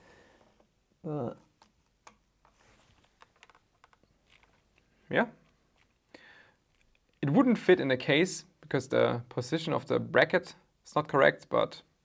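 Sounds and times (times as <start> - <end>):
small clicks and taps from handling: 1.5 - 6.0.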